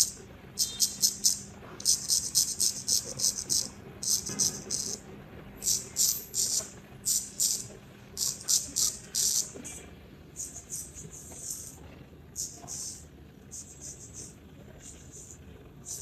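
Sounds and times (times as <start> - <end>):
razor scraping whiskers: 0.0 - 5.0, 5.6 - 7.6, 8.2 - 9.6, 10.4 - 11.8.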